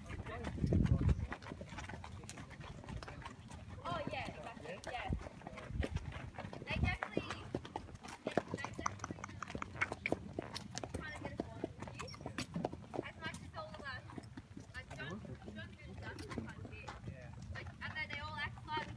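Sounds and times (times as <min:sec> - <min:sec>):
horse hooves clip-clopping on dirt: 0:00.0 - 0:18.9.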